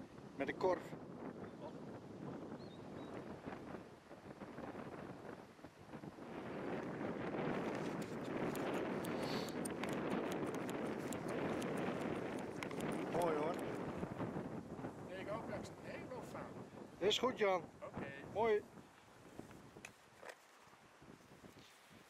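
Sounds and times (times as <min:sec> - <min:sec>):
wind noise on microphone: 0:00.0 - 0:22.0
sharp clicks: 0:08.0 - 0:13.9.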